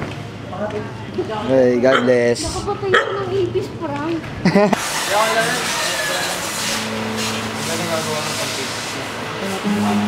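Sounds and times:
people's voices: 5.1s - 10.0s.

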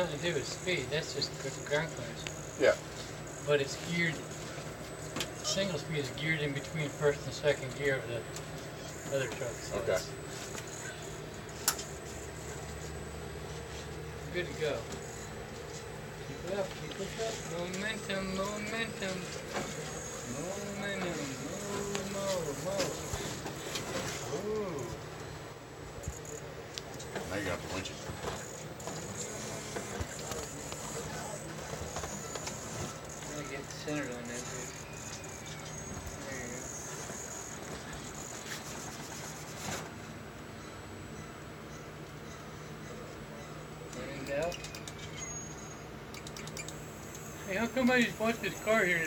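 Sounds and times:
steady low hum: 0.0s - 49.0s
indistinct voices: 16.3s - 25.1s
sharp click: 46.1s - 47.3s.

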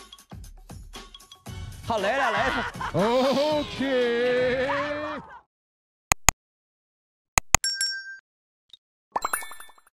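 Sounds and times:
sharp clicks: 6.1s - 6.4s.

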